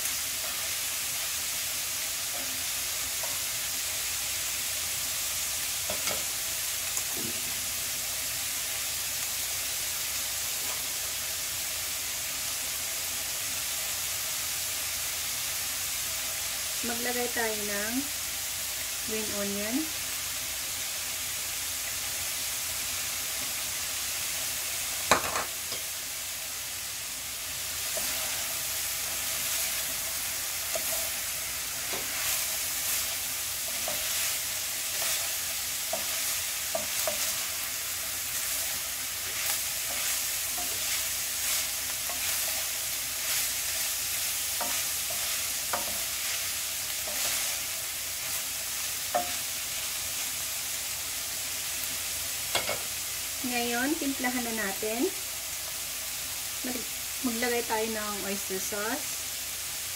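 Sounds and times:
food sizzling in a frying pan: 0.0s - 59.9s.

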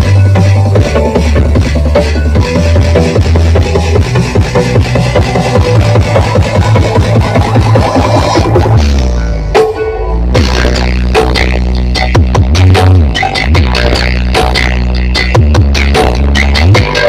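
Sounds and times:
loud dance music with heavy bass: 0.0s - 17.0s.

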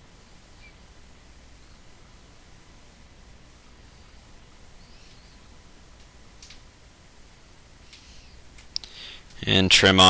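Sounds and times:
faint chirp: 0.0s - 2.5s, 3.7s - 5.7s, 7.8s - 9.1s
low steady hum: 0.0s - 10.0s
faint soft clicks: 6.0s - 6.7s, 7.8s - 9.4s.

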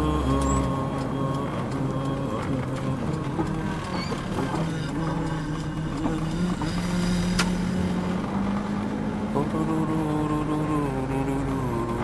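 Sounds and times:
car engine accelerating: 0.0s - 12.0s.

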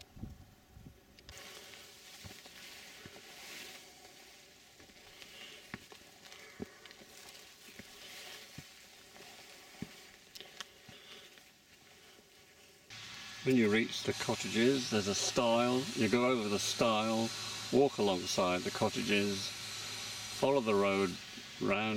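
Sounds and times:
rustling of fronds brushing past: 1.3s - 10.3s
soft footsteps: 1.3s - 12.9s.

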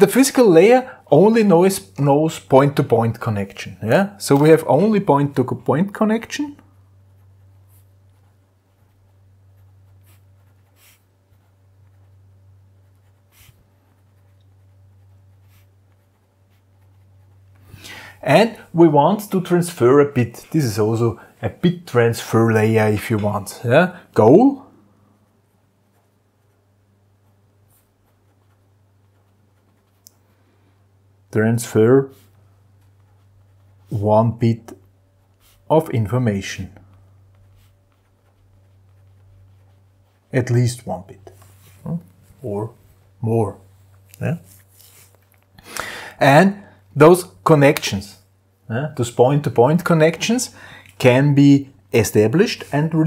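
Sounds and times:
steady low hum: 0.0s - 53.0s
pencil scratching on paper: 6.7s - 17.7s, 25.4s - 30.4s, 32.0s - 42.2s.

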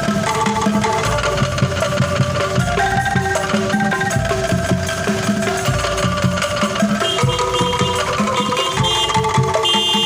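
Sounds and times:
bamboo percussion beat: 0.0s - 10.0s
rattling bamboo tubes: 0.0s - 10.0s.

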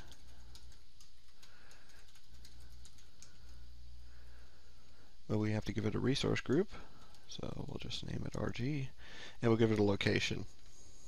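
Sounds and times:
keyboard keys clicking: 0.0s - 3.6s
low steady hum: 0.0s - 11.0s.

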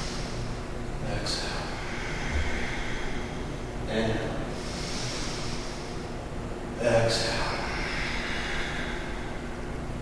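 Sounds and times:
breathing through the nose: 1.6s - 3.6s, 4.6s - 6.1s, 7.5s - 9.5s.

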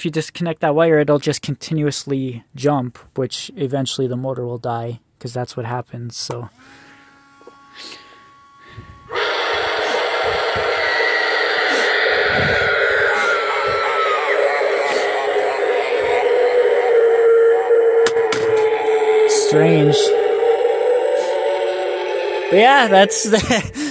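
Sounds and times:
animatronic sound-effect track: 8.7s - 23.9s.

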